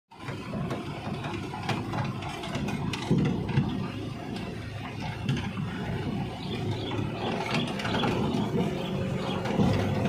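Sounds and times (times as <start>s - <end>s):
cab rattling and knocking: 0.1s - 10.0s
vehicle engine running: 0.1s - 10.0s.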